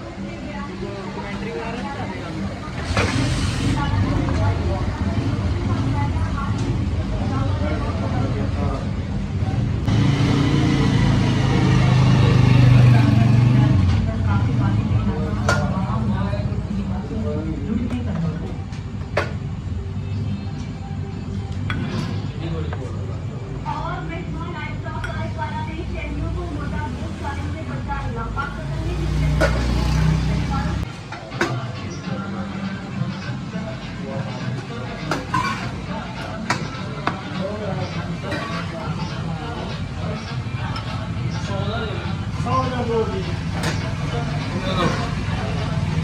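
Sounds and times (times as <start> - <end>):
voices: 0.0 - 46.0
motor vehicle rumbling past: 9.8 - 15.2, 26.2 - 30.9
vehicle engine humming: 23.4 - 30.9.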